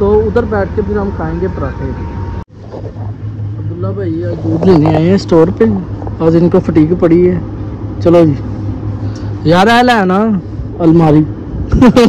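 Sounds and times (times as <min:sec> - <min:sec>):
low hum: 0:00.0 - 0:12.0.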